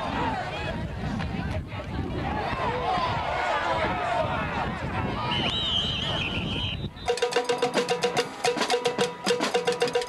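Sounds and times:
crowd noise: 0.0 - 10.0
whistle blowing: 5.3 - 7.5
cowbell-like clanking: 7.1 - 10.0.

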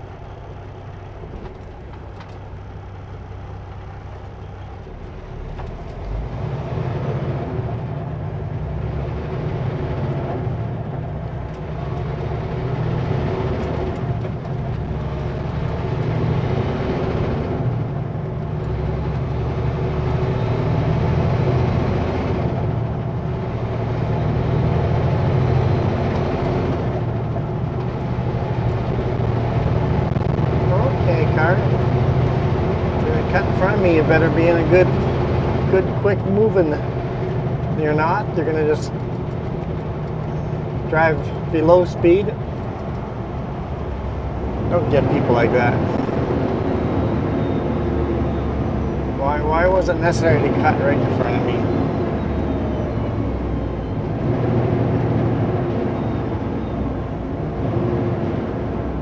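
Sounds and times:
diesel truck engine accelerating: 0.0 - 59.0
high engine whine: 0.0 - 59.0.

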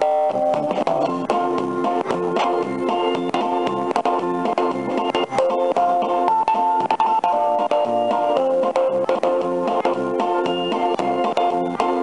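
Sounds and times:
kiddie ride music: 0.0 - 12.0.

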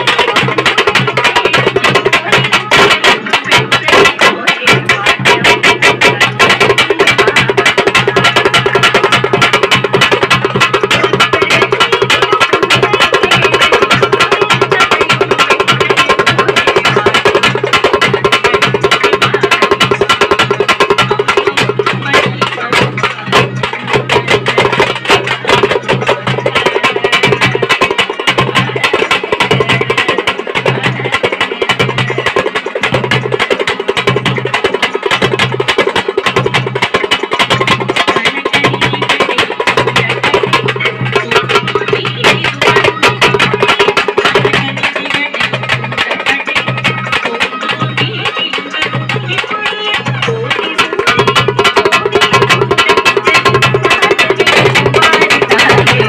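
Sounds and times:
frame drums struck with sticks: 0.0 - 56.0.

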